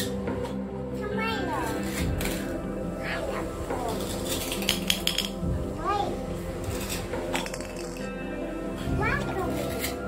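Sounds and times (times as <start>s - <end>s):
plastic toys clacking on tile floor: 3.9s - 5.4s, 6.8s - 8.1s.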